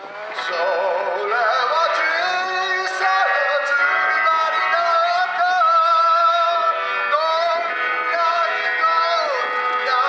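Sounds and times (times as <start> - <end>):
live band electric instruments: 0.0 - 10.0
man singing sustained notes: 0.4 - 10.0.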